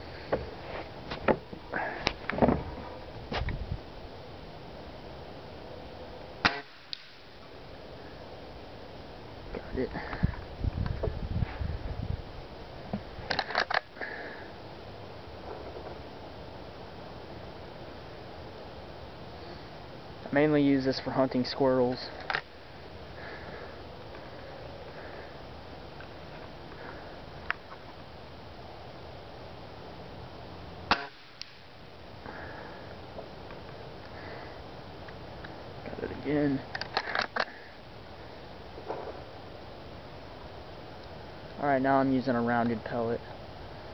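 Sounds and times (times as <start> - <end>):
handling thumps and rustle: 0.2 - 3.6
air rifle shot: 6.4 - 7.3, 30.9 - 31.7
air rifle cocking clicks: 13.3 - 13.9, 36.7 - 37.5.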